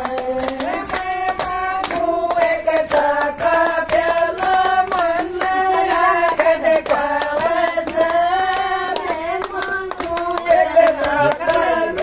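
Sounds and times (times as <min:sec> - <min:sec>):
woman singing folk song: 0:00.0 - 0:12.0
women clapping along: 0:00.0 - 0:12.0.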